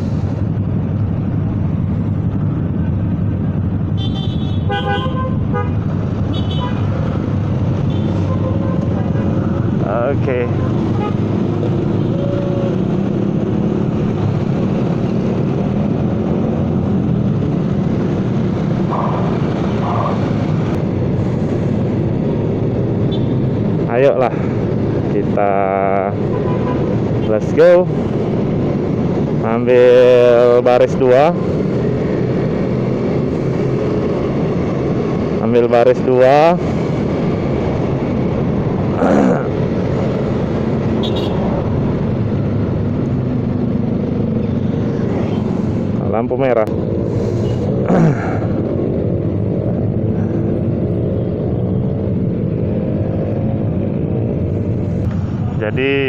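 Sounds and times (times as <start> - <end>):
motor scooter riding in traffic: 0.0 - 56.0.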